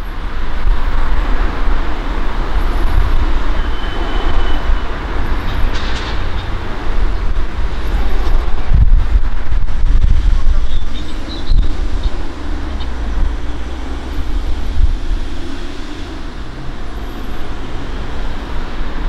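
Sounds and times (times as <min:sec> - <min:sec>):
train engines low rumble: 0:00.0 - 0:19.0.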